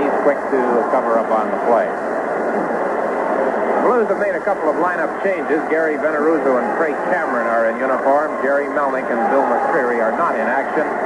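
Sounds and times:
muffled crowd murmur: 0.0s - 11.0s.

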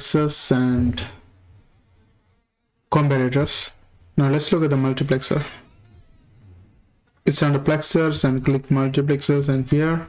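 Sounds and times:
faint low hum and hiss: 0.0s - 10.0s
person speaking: 2.9s - 5.9s.

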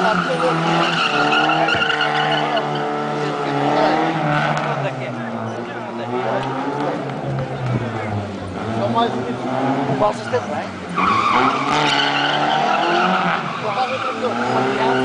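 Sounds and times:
tyre squeal: 0.0s - 2.9s
car engine revving hard: 0.0s - 15.0s.

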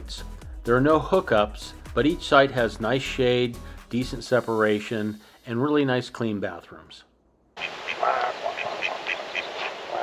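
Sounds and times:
duck quacking: 7.6s - 10.0s.

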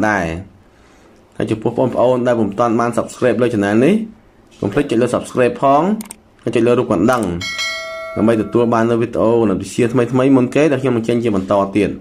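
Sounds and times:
speech: 0.0s - 0.6s, 1.4s - 7.5s, 8.2s - 12.0s
notification bell ding: 7.4s - 8.9s.

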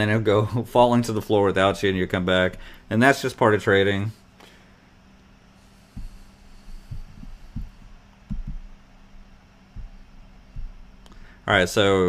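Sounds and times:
low electrical hum: 0.0s - 12.0s
soft dull thumps: 5.8s - 8.9s, 9.7s - 11.0s.

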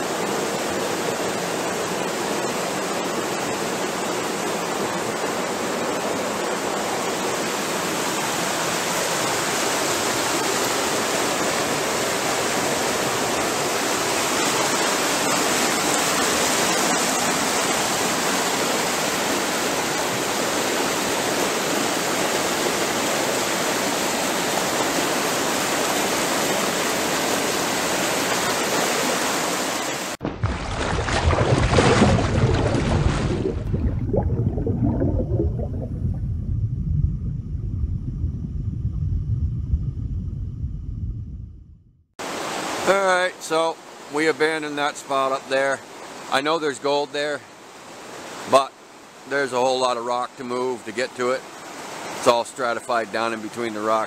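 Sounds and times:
water rushing over rocks: 0.0s - 36.3s, 42.2s - 54.0s.

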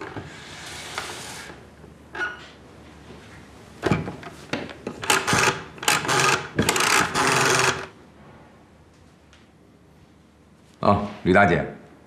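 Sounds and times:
telephone dial whirring: 5.0s - 7.9s.

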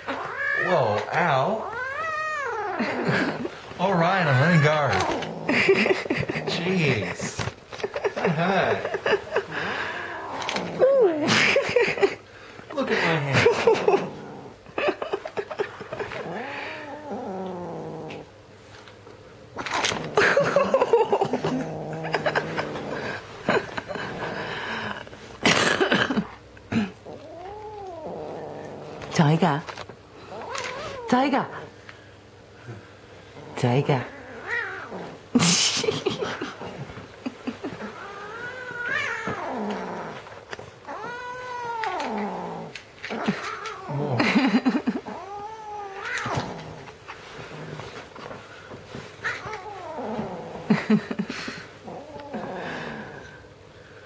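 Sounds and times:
cat yowling: 0.0s - 0.9s, 1.6s - 2.9s, 34.1s - 35.0s
kitten growling low: 0.0s - 3.5s, 4.3s - 6.9s, 9.5s - 11.3s, 13.4s - 14.7s, 15.4s - 18.3s, 19.6s - 25.1s, 26.7s - 29.2s, 32.7s - 35.5s, 36.5s - 48.1s, 49.2s - 53.5s.

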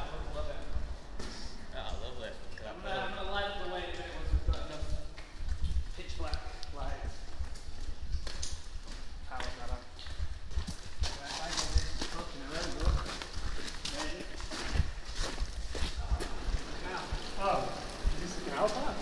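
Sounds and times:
footsteps crunching on gravel: 7.2s - 19.0s
footsteps splashing through puddles: 7.3s - 19.0s.

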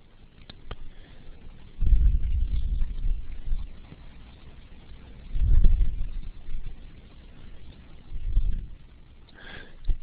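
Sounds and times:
puff of breath on microphone: 9.4s - 10.0s.

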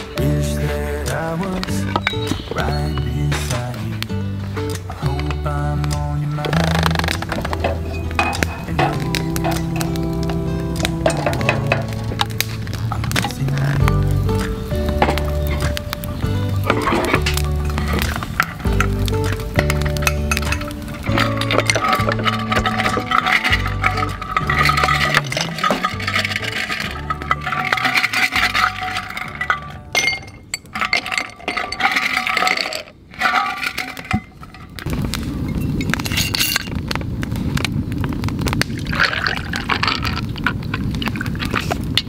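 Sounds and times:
background music with bass line: 0.0s - 30.3s
ice cubes clinking in glass: 19.6s - 34.7s.

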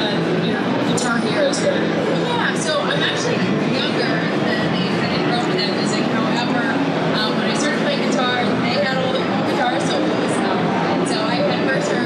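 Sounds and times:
crowd chatter: 0.0s - 12.0s
woman talking into microphone: 0.0s - 12.0s.

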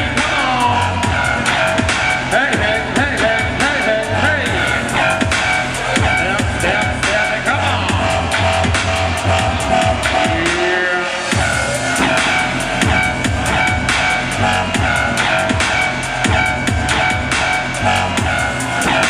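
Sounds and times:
deep bass notes: 0.0s - 19.0s
steady electronic beat: 0.0s - 19.0s.

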